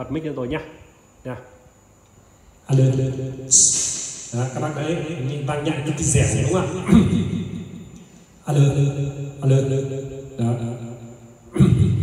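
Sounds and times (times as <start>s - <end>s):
man calling into microphone with echo: 2.7s - 12.0s.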